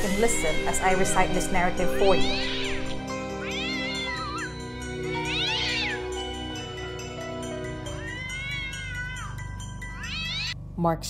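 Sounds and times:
background music: 0.0 - 10.6
cat meowing: 2.1 - 6.2, 7.8 - 10.6.

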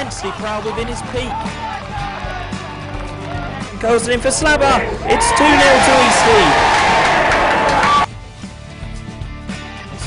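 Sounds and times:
football crowd cheering: 0.0 - 8.1
background music: 0.0 - 10.0.

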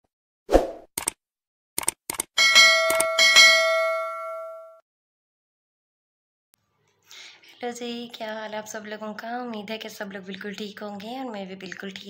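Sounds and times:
quick clicks: 1.0 - 1.2, 1.8 - 2.3
bell-like notification chime: 2.4 - 4.8.

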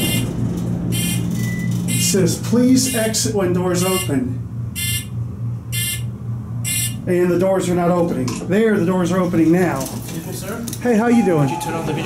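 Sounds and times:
elevator buzzer beeping: 0.0 - 2.2, 2.8 - 7.1.

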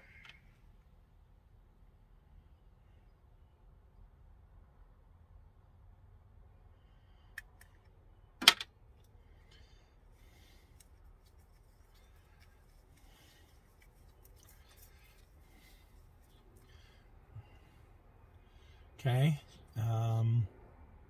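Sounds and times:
stirring stick scraping in cup: 10.3 - 17.6.

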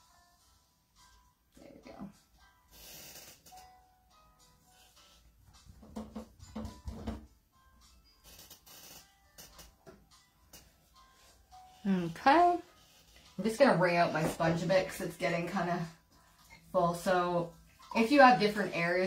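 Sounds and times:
quiet background music: 0.0 - 19.0.

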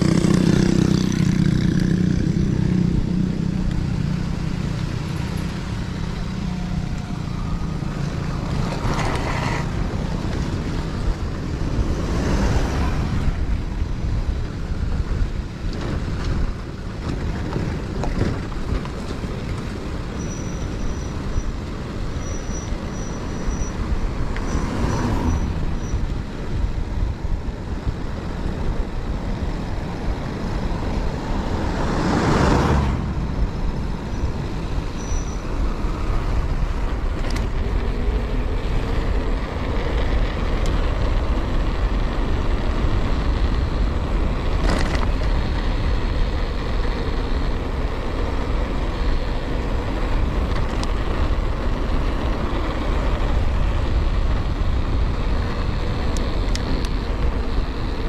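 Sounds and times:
tyres on wet road: 0.0 - 58.0
wind rumble on microphone: 0.0 - 58.0.

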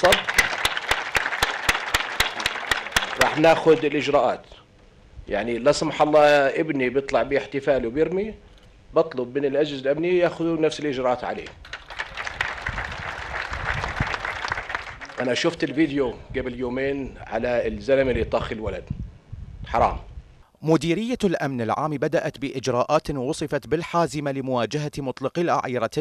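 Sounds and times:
audience applauding: 0.0 - 3.8, 11.6 - 15.6
crowd clapping in rhythm: 0.0 - 3.8, 11.6 - 15.4.

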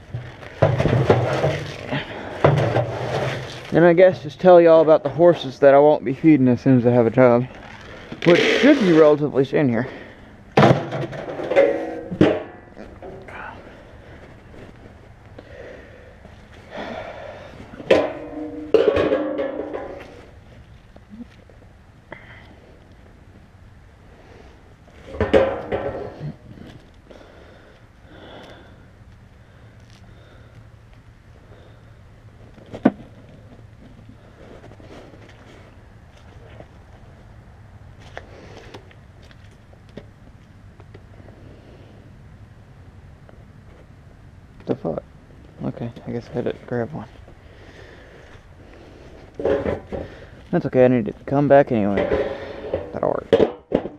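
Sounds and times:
metal trash-can lids clanking: 10.6 - 12.6, 17.9 - 20.0, 25.1 - 26.2, 52.0 - 53.9.

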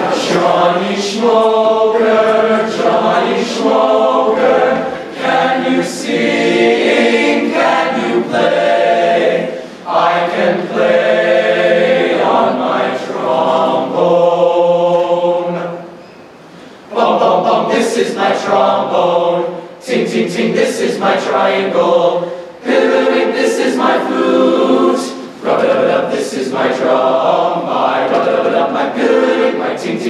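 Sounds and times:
male choir singing a cappella: 0.0 - 15.9, 16.9 - 30.0
singers breathing: 9.5 - 9.9, 16.4 - 16.9, 22.2 - 22.6.

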